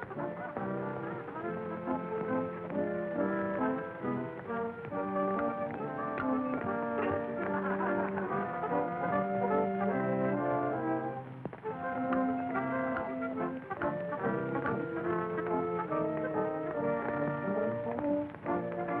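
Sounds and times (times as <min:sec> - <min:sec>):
brass dance music: 0:00.0 - 0:19.0
trombone: 0:00.0 - 0:19.0.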